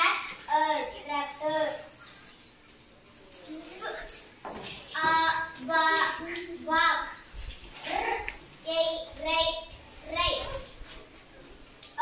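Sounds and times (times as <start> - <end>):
child reading words aloud: 0.0 - 1.9, 3.5 - 4.2, 4.9 - 11.0.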